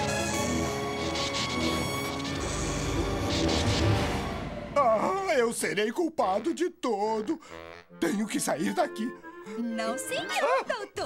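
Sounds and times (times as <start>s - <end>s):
orchestral cartoon music: 0.0s - 5.2s, 7.5s - 10.8s.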